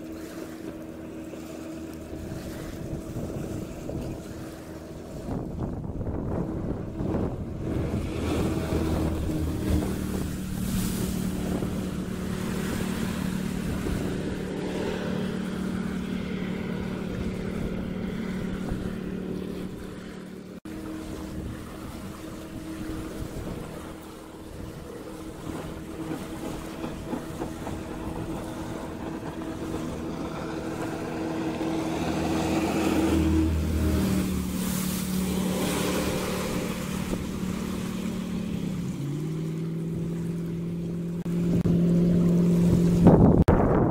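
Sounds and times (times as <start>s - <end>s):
jetboat engine hum: 0.0s - 43.9s
rushing water: 0.0s - 43.9s
wind: 0.0s - 43.9s.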